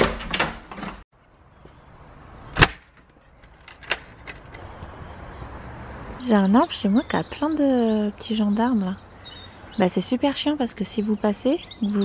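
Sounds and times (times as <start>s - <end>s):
keys jingling: 3.0s - 4.6s.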